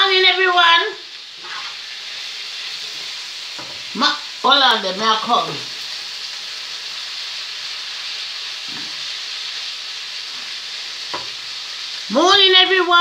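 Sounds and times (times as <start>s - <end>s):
food sizzling in a pan: 0.0s - 13.0s.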